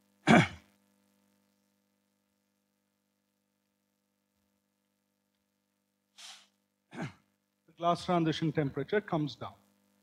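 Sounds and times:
man breathing into microphone: 6.2s - 6.5s
man speaking: 7.7s - 9.6s.

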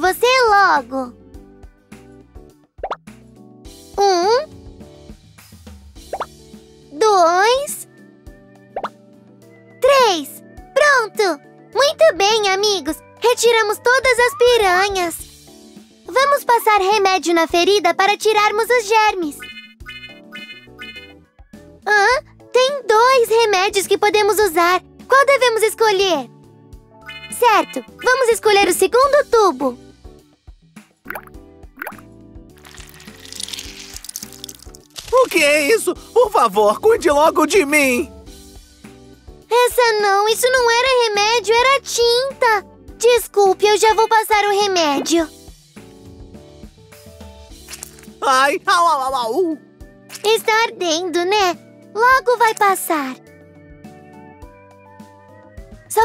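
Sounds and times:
light children's background music: 0.0s - 56.0s
rising cartoon pop effects: 2.8s - 3.1s, 6.0s - 6.4s, 8.7s - 9.0s, 31.0s - 34.9s.

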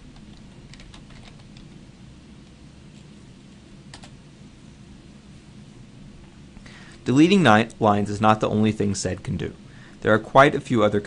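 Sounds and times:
low hum: 0.0s - 11.0s
keyboard keystrokes: 0.2s - 1.7s, 3.9s - 4.2s.

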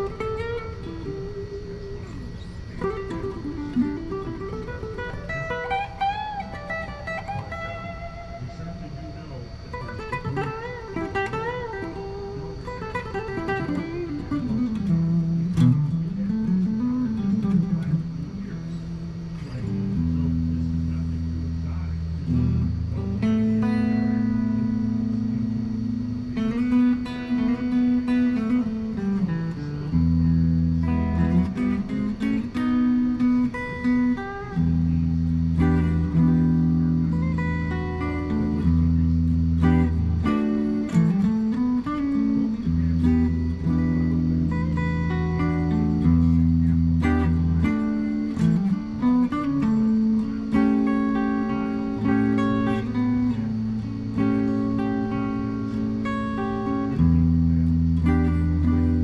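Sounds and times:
clean electric guitar: 0.0s - 59.0s.

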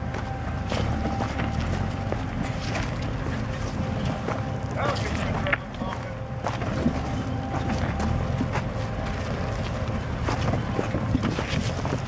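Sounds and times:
off-road vehicle engine running: 0.0s - 12.0s.

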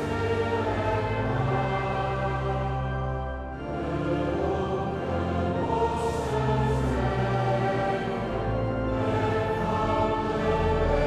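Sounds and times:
choir and congregation singing hymn: 0.0s - 11.0s.

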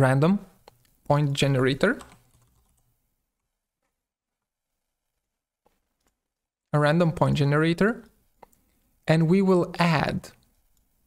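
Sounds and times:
soft keyboard keystrokes: 1.9s - 2.9s.

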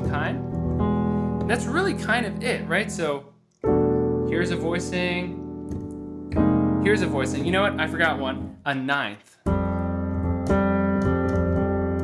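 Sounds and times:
piano notes ringing: 0.0s - 8.7s, 9.5s - 12.0s.

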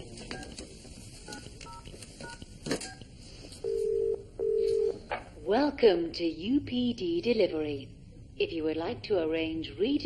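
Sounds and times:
phone ringing tone: 3.6s - 5.0s.

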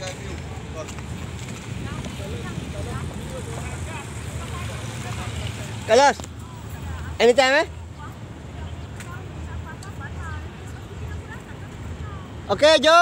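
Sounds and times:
street traffic rumble: 0.0s - 13.0s.

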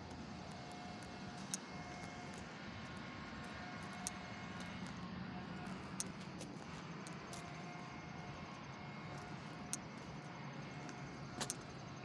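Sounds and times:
distant engine drone: 0.0s - 12.0s.

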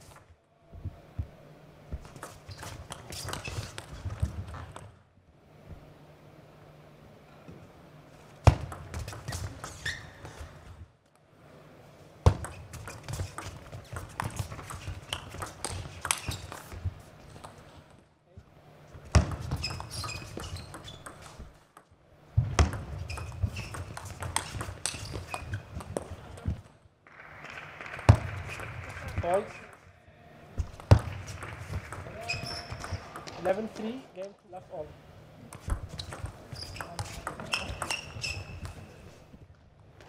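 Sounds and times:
table tennis ball clicking: 12.4s - 16.6s.

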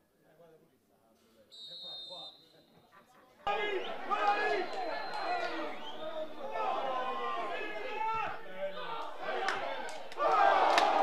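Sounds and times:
crowd shouting and yelling: 3.4s - 11.0s.

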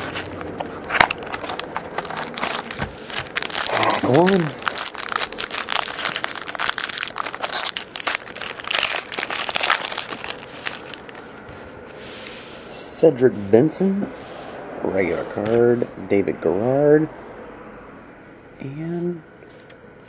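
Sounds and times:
foil wrapper crinkling and tearing: 0.0s - 11.2s.

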